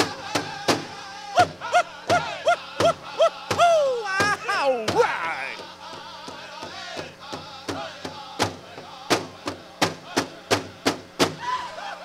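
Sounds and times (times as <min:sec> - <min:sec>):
people singing: 0:00.0 - 0:12.0
drum struck in a steady beat: 0:05.9 - 0:11.4.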